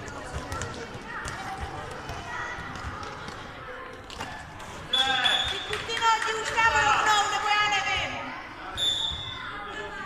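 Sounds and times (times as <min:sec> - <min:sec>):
handball bouncing on floor: 0:00.0 - 0:03.4.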